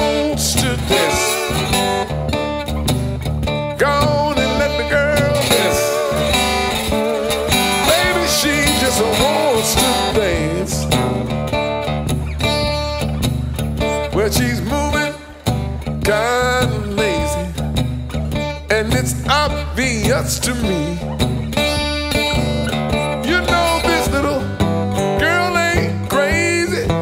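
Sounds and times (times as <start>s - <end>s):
sliding lead melody: 0.0s - 14.2s
acoustic guitar: 0.0s - 27.0s
steady bass line: 0.0s - 27.0s.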